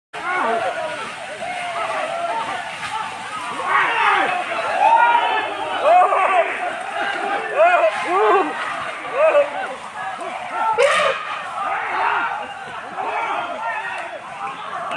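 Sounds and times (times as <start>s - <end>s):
crowd shouting and calling: 0.2s - 14.9s.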